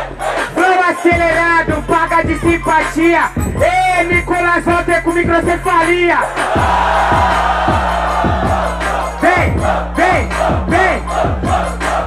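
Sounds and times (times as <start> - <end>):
crowd and mc shouting: 0.0 - 2.9, 6.2 - 12.0
trap beat with sliding bass: 0.0 - 12.0.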